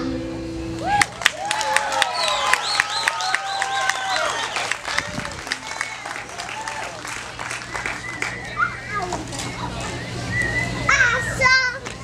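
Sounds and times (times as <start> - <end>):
children chattering and calling out: 7.7 - 12.0.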